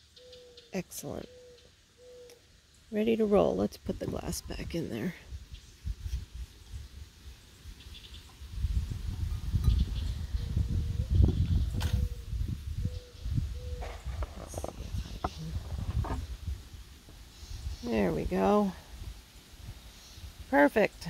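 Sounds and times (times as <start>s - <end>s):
low rumbling handling noise: 13.6s - 17.2s.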